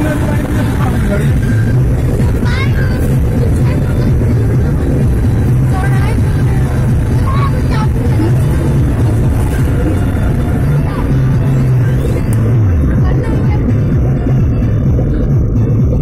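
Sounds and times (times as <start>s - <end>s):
voice fragments: 0.0s - 14.2s
music playing: 0.0s - 16.0s
vehicle interior drone: 0.0s - 16.0s.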